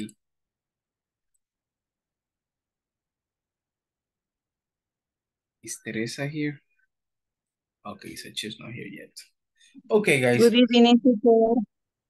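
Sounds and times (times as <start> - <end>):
man speaking: 5.7 - 6.6, 7.9 - 9.2, 9.9 - 10.6.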